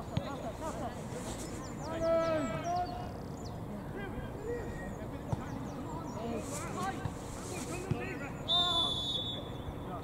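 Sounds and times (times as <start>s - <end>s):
players shouting: 1.8s - 3.2s
referee's whistle blast: 8.5s - 9.5s.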